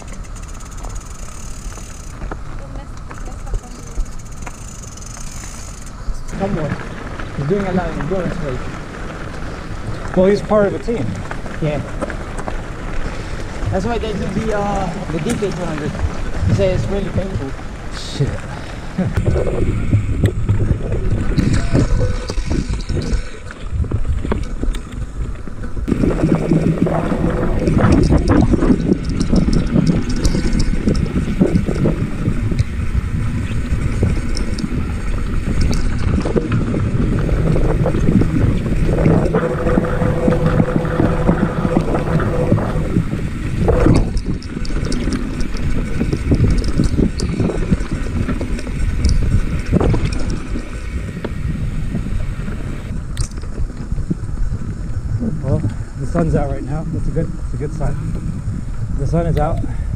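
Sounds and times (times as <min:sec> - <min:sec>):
bike rattling over rocks: 0:00.0 - 0:59.9
bike tyres rumbling on dirt: 0:00.0 - 0:59.9
wind buffeting microphone: 0:05.9 - 0:59.9.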